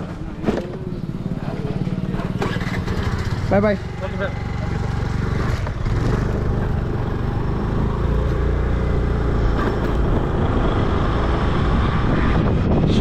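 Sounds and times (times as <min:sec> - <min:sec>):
motorbike engine running: 0:00.1 - 0:13.0
wind on microphone: 0:09.2 - 0:13.0.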